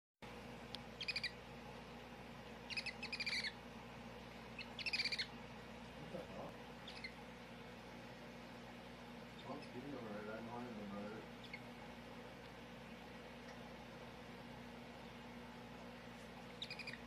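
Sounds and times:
faint steady hum: 0.2s - 17.0s
rapid high-pitched chirps: 1.0s - 1.4s, 2.7s - 3.6s, 4.6s - 5.3s, 6.8s - 7.2s, 16.6s - 17.0s.

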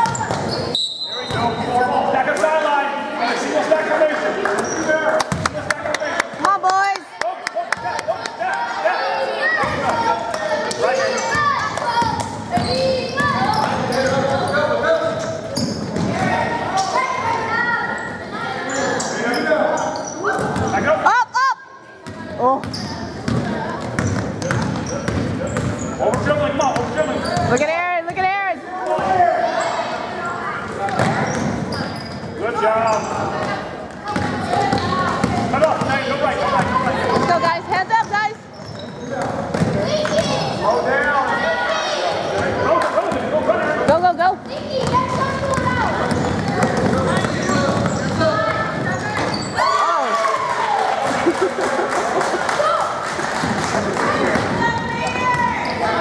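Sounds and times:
echoing voices in hall: 0.0s - 56.0s.

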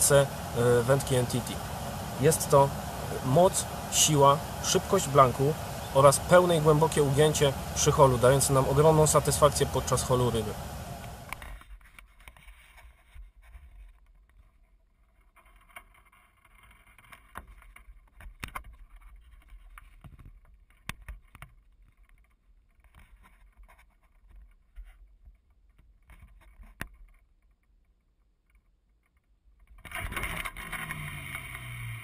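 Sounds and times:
low wind rumble: 0.0s - 11.4s.

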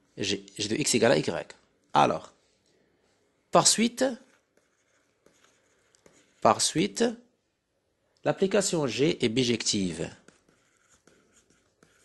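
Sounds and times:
stylus scratching on tablet screen: 3.6s - 7.1s, 9.4s - 12.0s.

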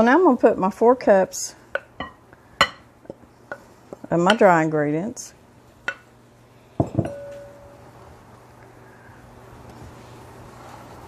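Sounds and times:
spoon clinking on bowls: 6.8s - 7.8s.

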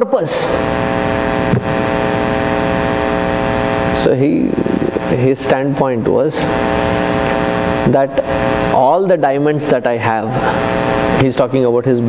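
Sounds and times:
electrical hum with hiss: 0.0s - 12.0s.

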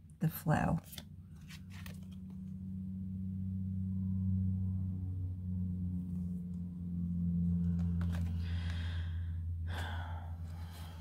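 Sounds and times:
cards rustling: 0.8s - 2.6s, 7.5s - 9.0s
ambient music drone: 2.0s - 11.0s.

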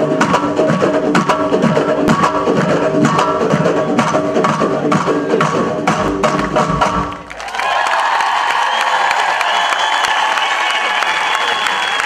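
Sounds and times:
percussion ensemble drumming: 0.0s - 7.6s
audience applause and cheering: 5.9s - 12.0s.

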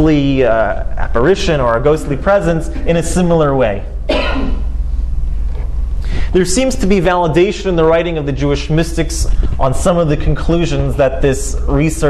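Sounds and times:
steady low hum: 0.0s - 12.0s
man coughing: 4.1s - 4.7s.

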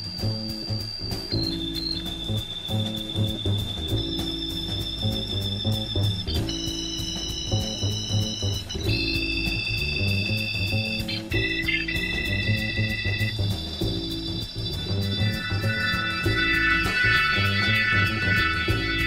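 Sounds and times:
bass: 0.0s - 19.0s
drums: 0.0s - 19.0s
organ chords: 0.0s - 19.0s.

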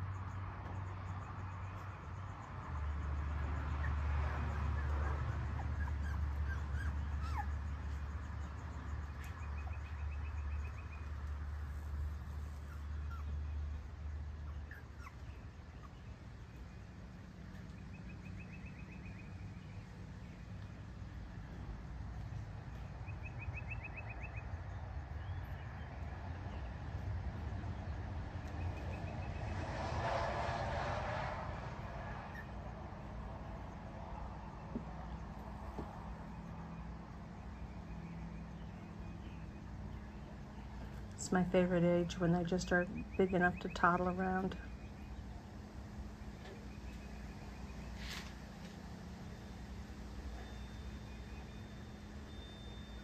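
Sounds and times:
vehicle passing by: 0.0s - 53.0s.

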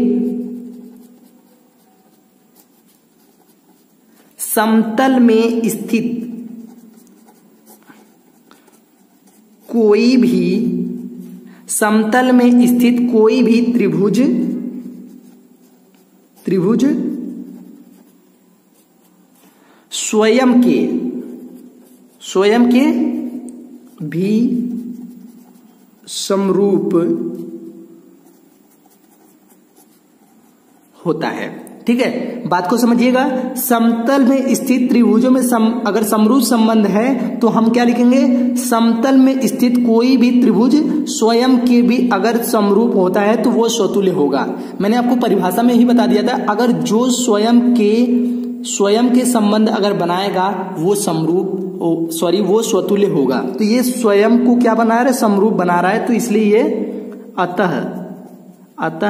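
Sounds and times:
pen scratching on paper: 0.0s - 11.4s, 12.0s - 32.3s, 57.5s - 59.0s.

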